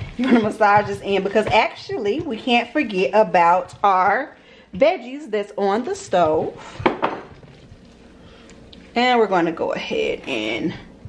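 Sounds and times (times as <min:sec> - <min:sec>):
hands kneading ground meat: 0:00.0 - 0:04.3, 0:05.8 - 0:06.6, 0:07.3 - 0:10.6.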